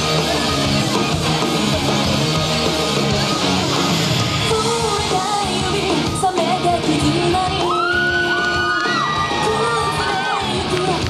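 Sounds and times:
stage music playing: 0.0 - 11.0
high voices whooping and cheering: 7.3 - 11.0.

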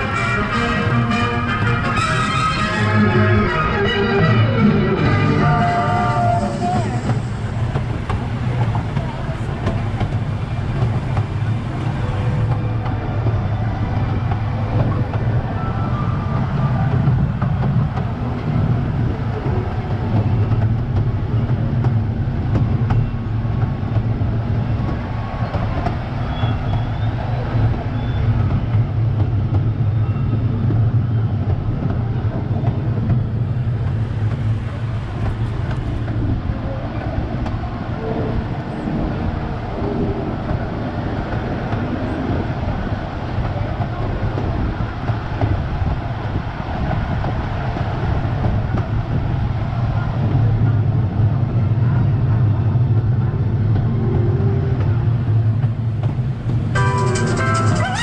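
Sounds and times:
train cars rumbling on track: 0.0 - 58.0.

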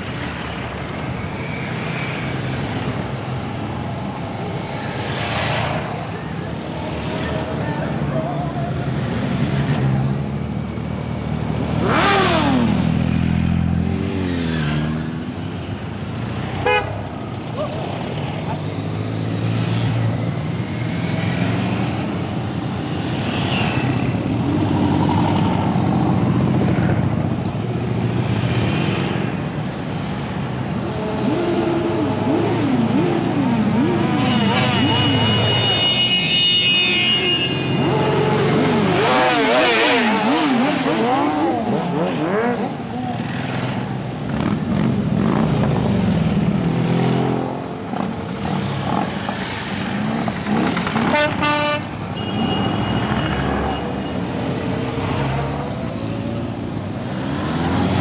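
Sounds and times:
motorcycles riding past revving: 11.5 - 35.8, 37.6 - 58.0.

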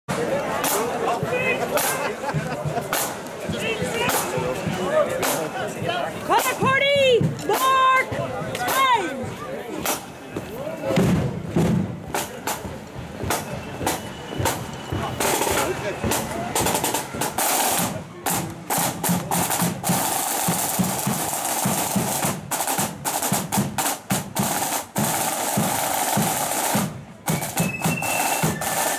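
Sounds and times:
crowd voices and calls: 0.1 - 28.9
marching band drums: 0.1 - 28.9
flute band playing: 6.0 - 9.1, 12.2 - 28.9.

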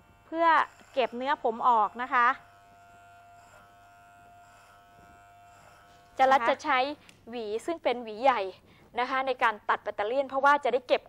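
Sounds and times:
electric hair clippers buzzing: 0.0 - 6.9.

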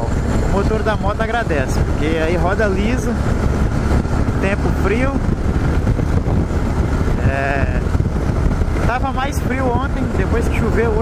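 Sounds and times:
motorcycle engine cruising: 0.0 - 11.0
wind rush on microphone: 0.0 - 11.0.

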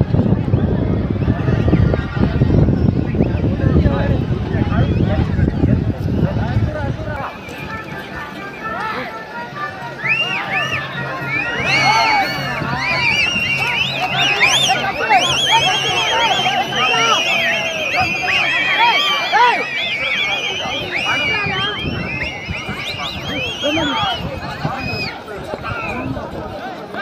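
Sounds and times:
crowd shouting and whistling: 0.0 - 27.0.

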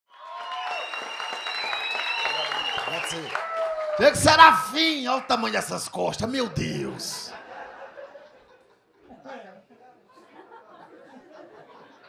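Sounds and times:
audience applauding: 0.1 - 7.3
cheering voices: 0.1 - 7.4.

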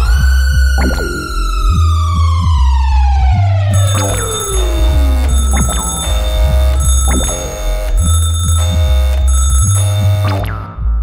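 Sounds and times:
electronic synth music: 0.0 - 10.8.

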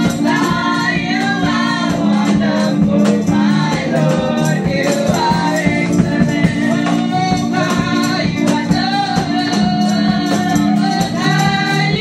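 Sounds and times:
hand percussion beat: 0.0 - 12.0
person singing into microphone: 0.0 - 12.0.

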